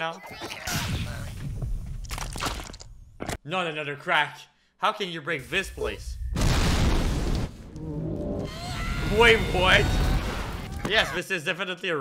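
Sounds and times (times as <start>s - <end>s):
cartoon explosion blast and rumble: 6.0s - 7.7s.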